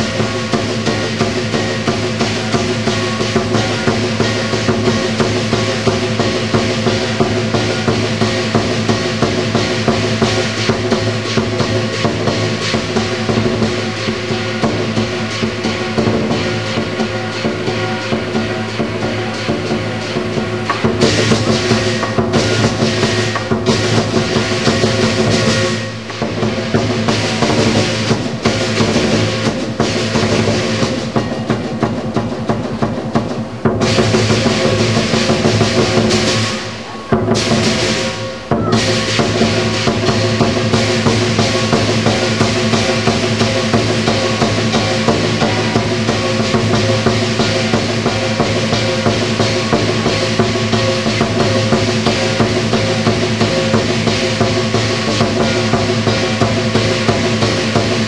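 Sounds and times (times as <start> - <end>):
cymbals crashing: 0.0 - 58.0
gongs ringing: 0.0 - 58.0
large drum beating: 0.0 - 58.0.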